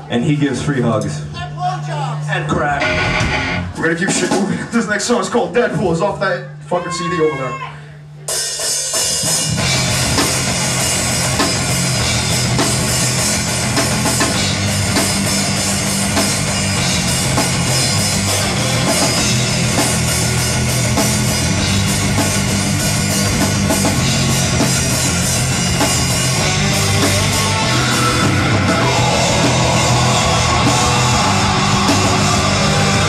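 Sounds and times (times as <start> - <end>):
bass guitar: 2.1 - 4.4, 8.2 - 33.0
electric guitars: 2.8 - 3.8, 9.5 - 33.0
drum kit: 2.8 - 6.0, 8.2 - 33.0.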